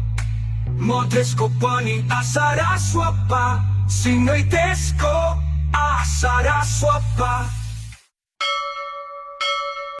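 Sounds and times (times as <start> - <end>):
bell chime ringing: 8.4 - 10.0.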